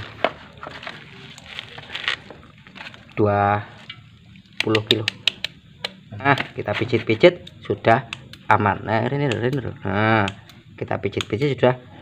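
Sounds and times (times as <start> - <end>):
handling wires and tools: 0.0 - 5.0.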